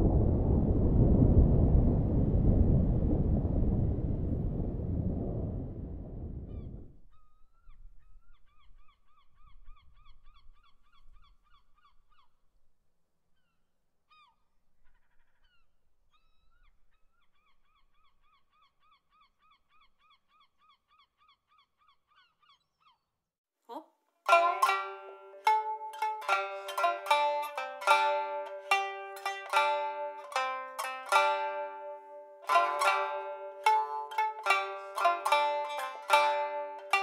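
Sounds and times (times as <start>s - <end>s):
churning sea water rumble: 0.0s - 6.9s.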